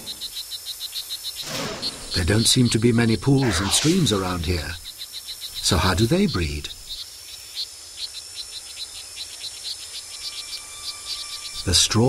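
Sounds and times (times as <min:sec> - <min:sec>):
high chirps: 0:00.0 - 0:12.0
insects and frogs calling: 0:00.0 - 0:12.0.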